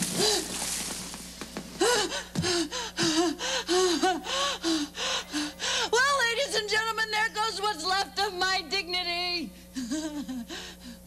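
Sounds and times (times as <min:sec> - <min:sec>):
woman gasping for breath: 0:01.8 - 0:05.9.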